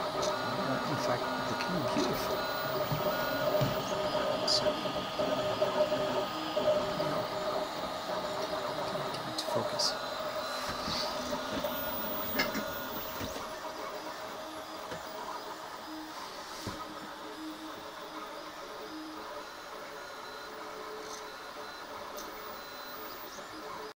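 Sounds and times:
stepper motors whining: 0.0s - 23.9s.

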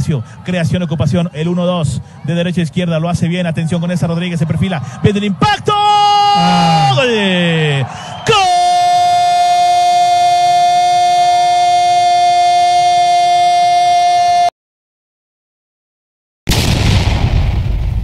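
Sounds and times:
commentator shouting goal: 0.0s - 14.4s
loud boom sound effect: 16.5s - 18.0s.

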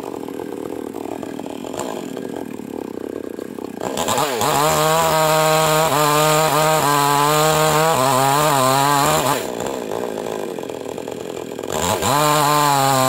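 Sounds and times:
chainsaw cutting log: 0.0s - 13.0s.

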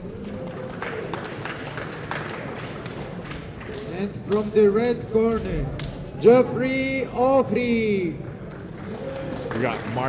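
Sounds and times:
audience applauding: 0.2s - 4.5s, 8.4s - 10.0s.

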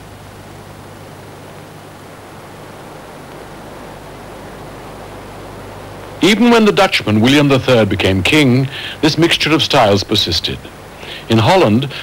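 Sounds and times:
low hum: 0.0s - 12.0s
tape hiss: 0.0s - 12.0s.

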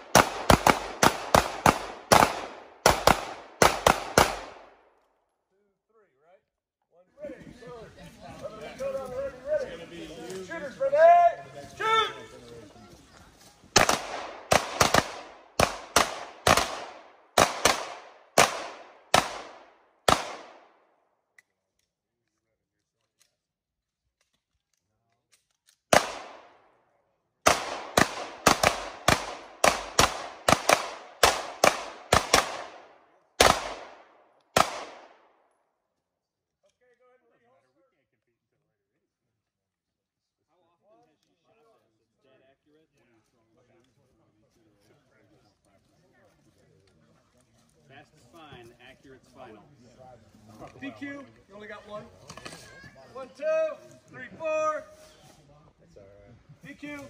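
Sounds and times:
voices: 7.0s - 13.8s.

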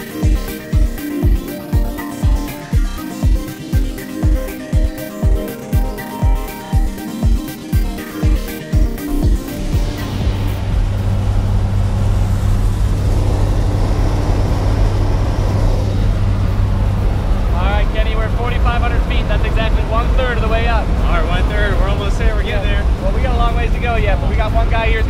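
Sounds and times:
airplane engine drone: 1.5s - 25.0s
indistinct voices talking: 12.9s - 25.0s.

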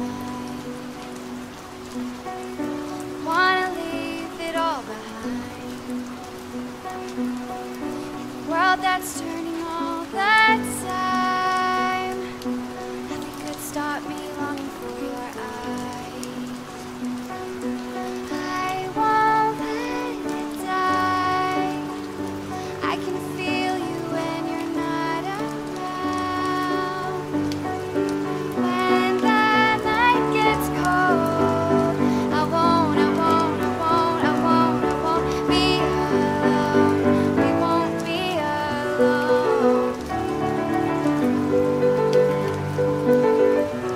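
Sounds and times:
woman singing acoustic ballad: 0.0s - 1.0s, 3.2s - 5.8s, 8.5s - 12.4s, 13.1s - 16.7s, 18.3s - 27.6s, 28.6s - 40.0s
steady rain falling: 0.0s - 43.9s.

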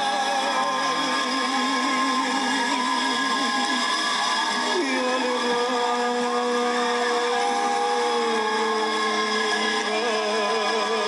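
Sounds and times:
man singing long note: 4.6s - 11.0s.

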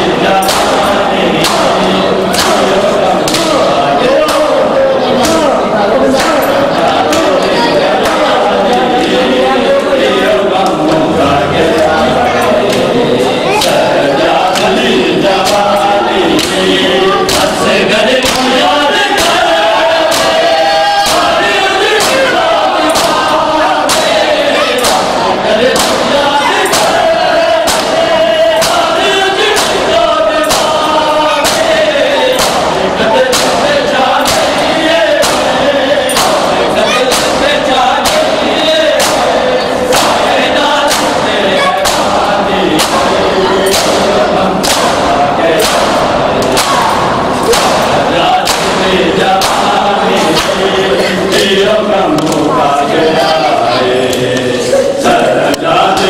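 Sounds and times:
men chanting in unison: 0.0s - 56.0s
hands striking bare chests: 30.5s - 37.4s, 43.7s - 48.8s.

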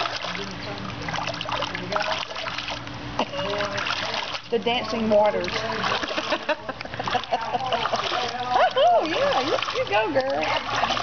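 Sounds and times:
water splashing and sloshing: 0.0s - 11.0s.

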